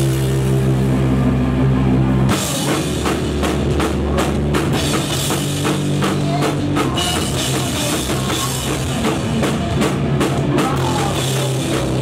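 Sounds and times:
drum kit hits and cymbals: 0.0 - 1.1, 2.2 - 12.0
live rock band playing: 0.0 - 12.0.

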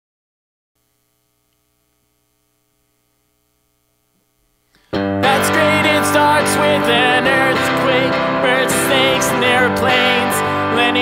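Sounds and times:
faint mains hum: 0.8 - 4.9.

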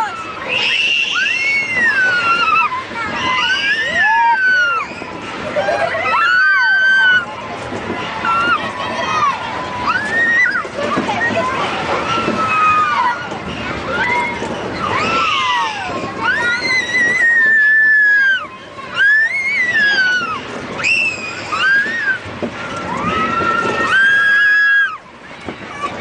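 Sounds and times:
children squealing and shrieking: 0.0 - 7.3, 8.2 - 25.1
excited chatter: 0.0 - 26.0.

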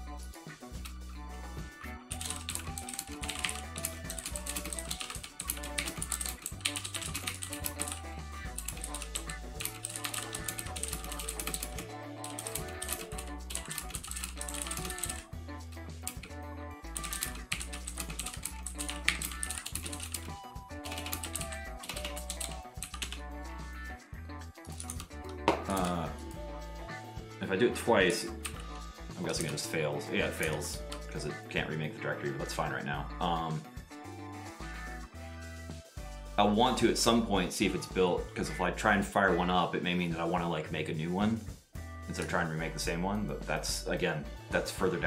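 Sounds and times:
background music with bass line: 0.0 - 45.0
typing on computer keyboard: 2.1 - 15.3, 17.0 - 23.2, 24.7 - 25.1.

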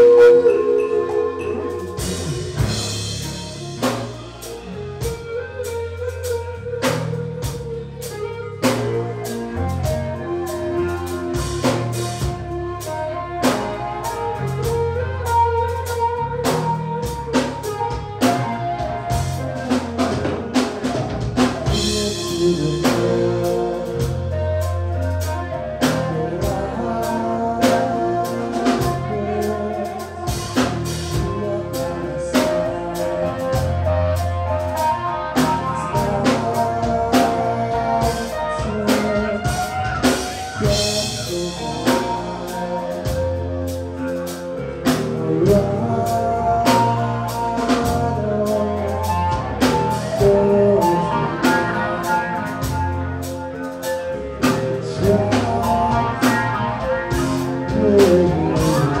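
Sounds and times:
rock band playing live: 0.0 - 59.0.

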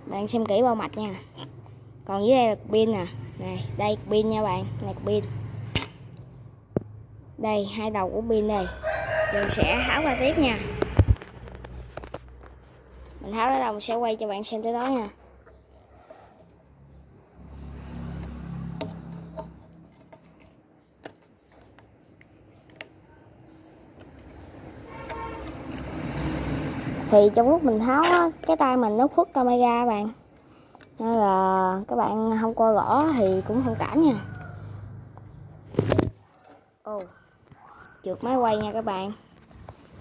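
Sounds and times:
plastic parts clicking: 32.8 - 33.6.

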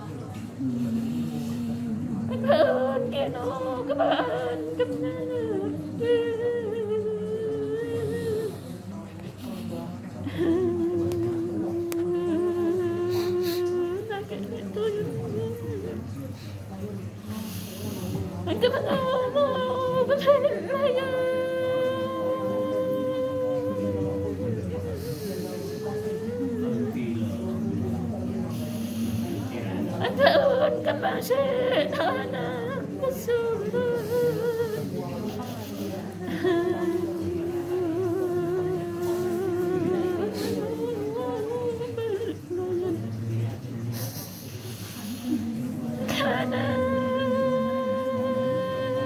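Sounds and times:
woman singing long steady note: 0.0 - 16.2, 18.4 - 35.1, 36.2 - 43.3, 45.4 - 49.0
hummed chant: 0.0 - 49.0.

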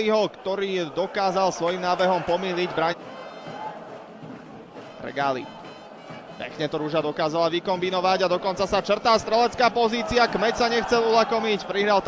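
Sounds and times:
male commentator speaking: 0.0 - 3.0, 5.0 - 5.5, 6.4 - 12.0.

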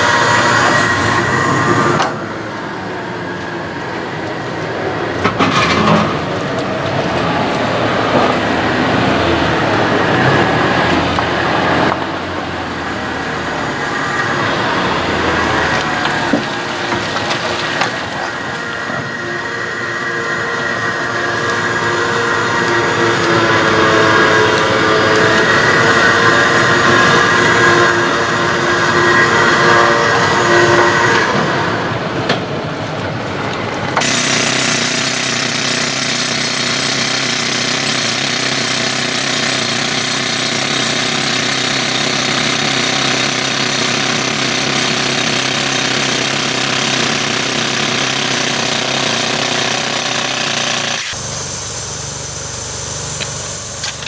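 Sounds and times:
vehicle engine whining under load: 0.0 - 54.0
pneumatic rock drill hammering: 15.0 - 19.5, 33.9 - 54.0.

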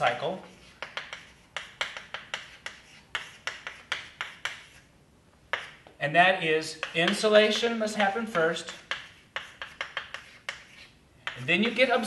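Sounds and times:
chalk tapping on blackboard: 0.0 - 4.9, 5.5 - 6.0, 6.7 - 12.0.

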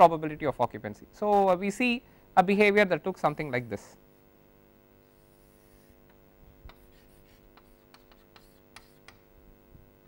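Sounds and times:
chalk tapping and scraping on blackboard: 5.1 - 9.3.

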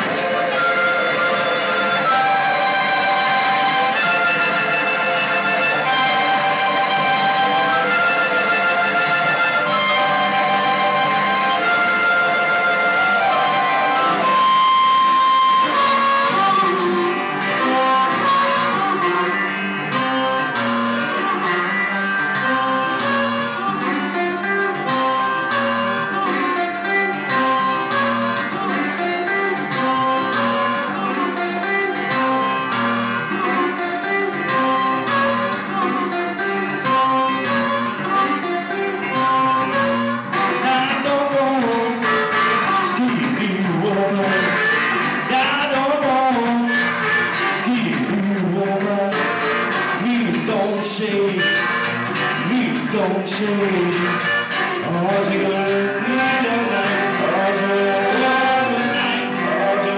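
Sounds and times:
blues harmonica riff: 0.0 - 59.9
electric guitar: 0.0 - 59.9.

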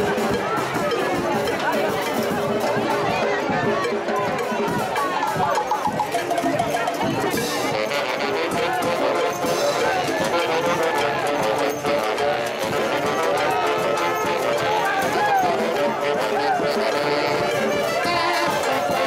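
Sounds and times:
brass band playing festive music: 0.0 - 19.0
crowd voices: 0.0 - 19.0.

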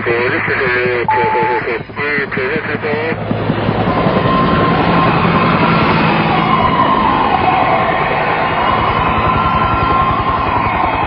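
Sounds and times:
vehicle noise rumble: 0.0 - 11.0
wailing siren: 1.0 - 11.0.

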